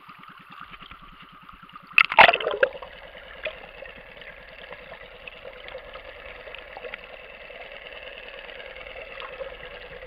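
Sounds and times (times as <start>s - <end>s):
small underwater clicks and crackles: 0.0s - 10.0s.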